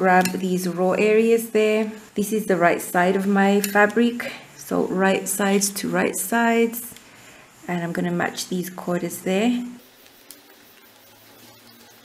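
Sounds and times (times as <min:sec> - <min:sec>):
small sharp ticks: 0:09.8 - 0:12.0.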